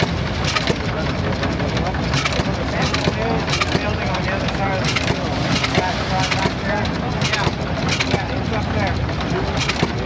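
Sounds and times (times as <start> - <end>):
people talking: 0.0 - 10.0
threshing machine clattering: 0.0 - 10.0.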